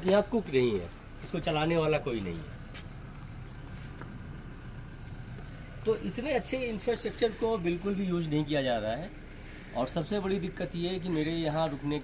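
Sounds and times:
low background rumble: 0:00.0 - 0:11.1.

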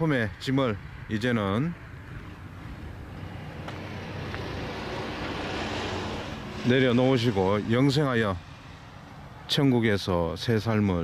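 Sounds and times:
passing vehicle rushing: 0:01.8 - 0:09.5.

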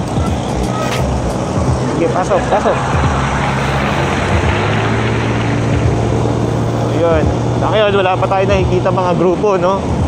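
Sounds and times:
scooter engine droning: 0:00.0 - 0:09.3
wind rushing over microphone: 0:00.0 - 0:10.0.

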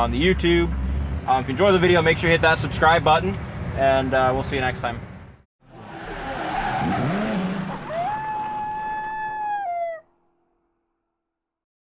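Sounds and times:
engine revving: 0:05.6 - 0:09.2
tyre screeching: 0:05.7 - 0:09.9
long rising howl: 0:05.7 - 0:10.1.

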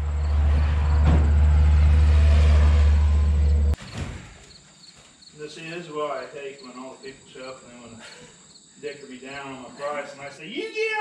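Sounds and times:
insects chirping: 0:00.0 - 0:11.0
men talking indistinctly: 0:05.4 - 0:08.2, 0:08.8 - 0:11.0.

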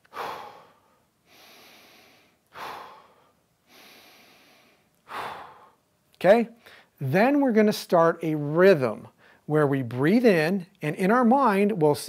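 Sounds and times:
man breathing deeply: 0:00.0 - 0:05.9, 0:06.6 - 0:07.0.

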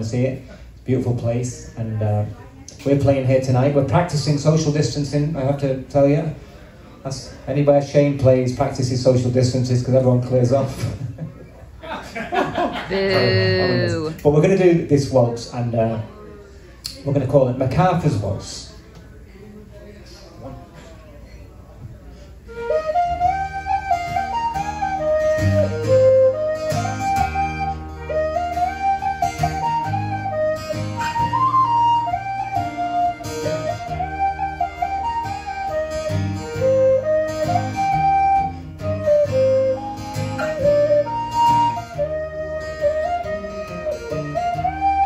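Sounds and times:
tin whistle melody: 0:22.5 - 0:45.0
strummed acoustic guitar: 0:23.0 - 0:45.0.

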